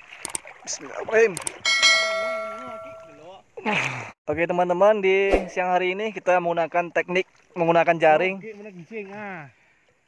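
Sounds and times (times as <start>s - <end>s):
river water: 0.0s - 4.2s, 5.1s - 10.0s
bright bell ding: 1.7s - 3.2s.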